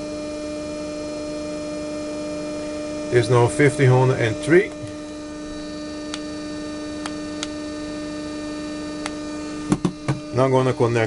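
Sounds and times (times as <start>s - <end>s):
motor electrical hum with high tone: 0.0s - 11.0s.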